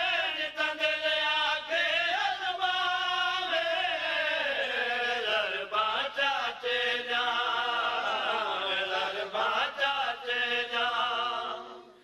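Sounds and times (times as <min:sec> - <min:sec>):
men chanting: 0:00.0 - 0:12.0.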